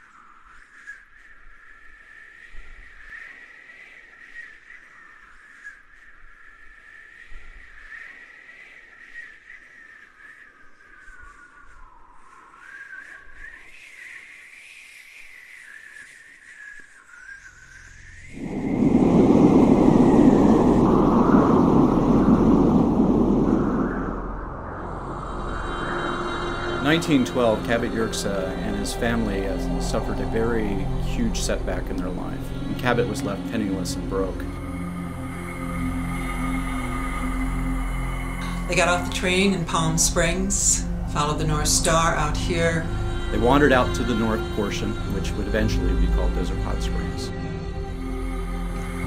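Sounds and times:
high wavering whistling tone: 0:00.0 - 0:49.0
loud rushing roar: 0:18.4 - 0:45.2.

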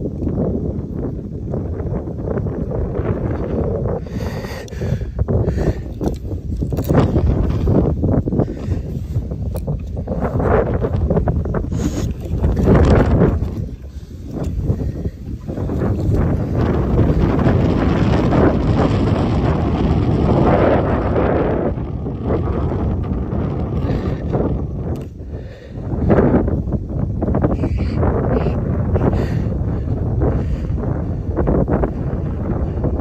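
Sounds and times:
wind buffeting microphone: 0:00.0 - 0:33.0.

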